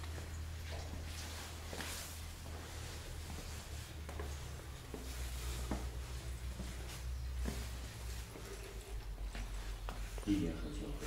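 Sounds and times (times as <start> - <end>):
faint footsteps on stone floor: 0.0 - 11.0.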